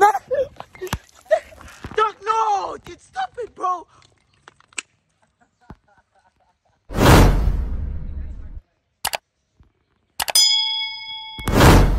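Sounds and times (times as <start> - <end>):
bell-like ding: 10.3 - 11.9.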